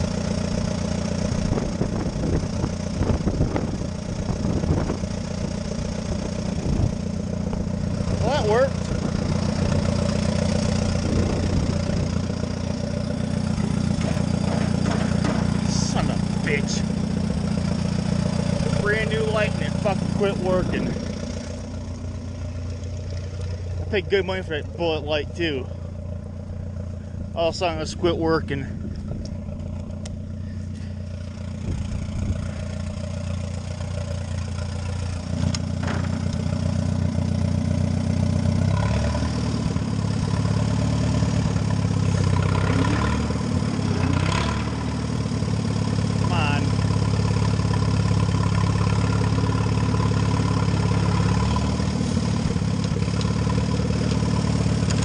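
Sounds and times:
tractor engine running: 0.0 - 55.0.

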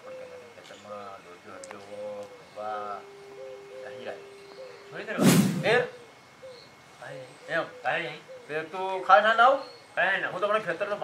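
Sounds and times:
men's voices: 5.1 - 6.0
loud thump: 5.2 - 5.8.

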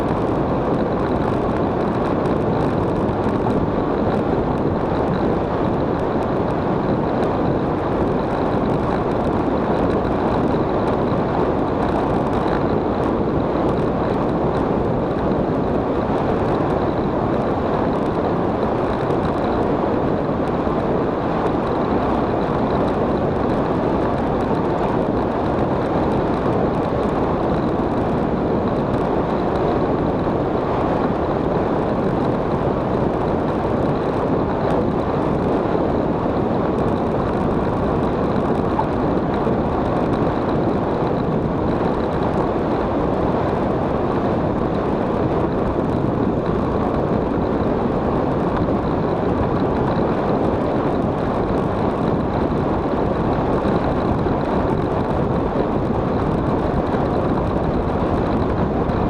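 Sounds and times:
wind buffeting microphone: 0.0 - 59.0.

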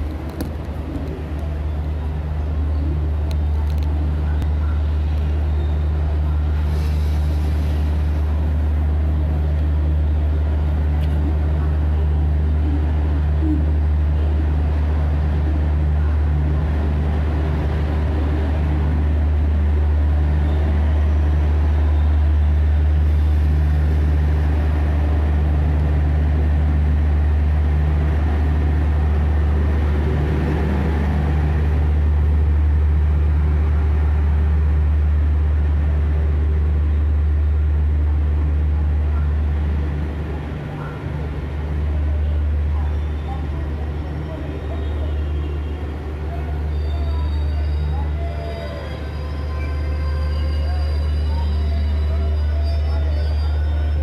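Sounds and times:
train rumbling: 0.0 - 54.0.

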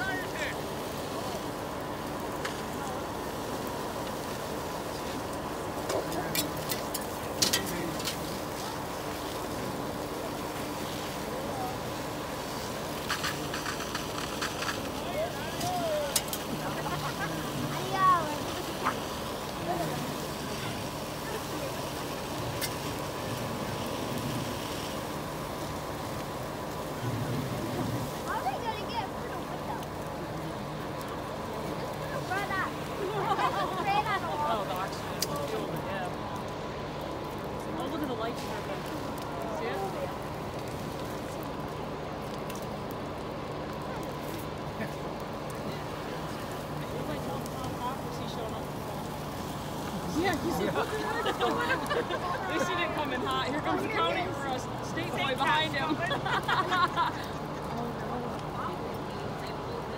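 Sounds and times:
distant voices calling out: 0.0 - 56.5
fire engines pumping water: 0.0 - 59.9
fire popping and cracking: 0.0 - 59.9.

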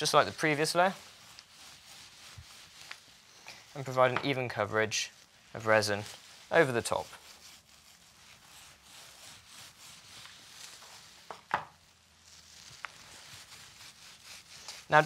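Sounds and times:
brush dabbing resin: 0.0 - 15.0
brush knocking resin pot: 0.0 - 15.0.

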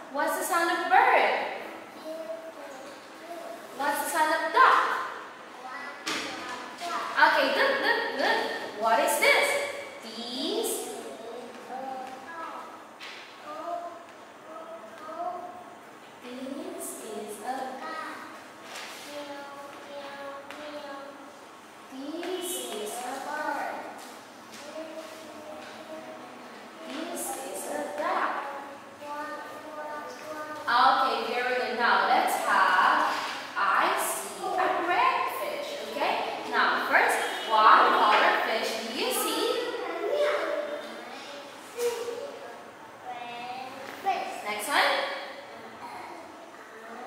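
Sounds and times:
woman speaking: 0.0 - 1.6, 3.8 - 5.1, 7.2 - 11.0, 16.2 - 17.8, 21.9 - 23.8, 26.9 - 28.4, 30.7 - 39.8, 44.4 - 45.2.

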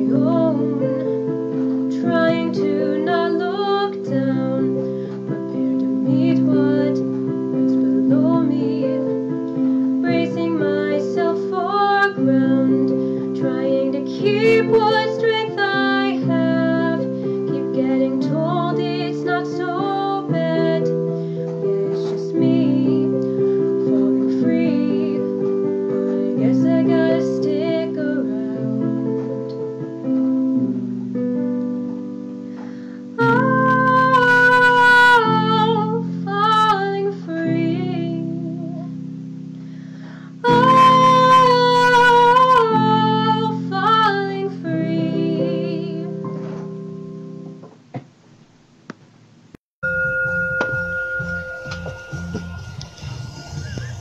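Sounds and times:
high wavering melody line: 49.8 - 54.0.

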